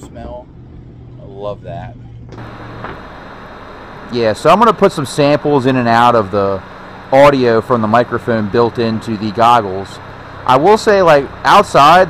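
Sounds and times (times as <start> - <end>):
low hum: 0.0 - 12.0
cooling fans running: 0.1 - 12.0
steady hiss: 2.4 - 12.0.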